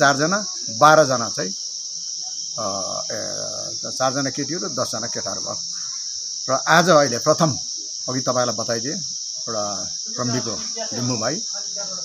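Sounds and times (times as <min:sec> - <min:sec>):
men talking: 0:00.0 - 0:01.6, 0:02.6 - 0:05.7, 0:06.5 - 0:11.4
insects chirring: 0:00.0 - 0:12.0.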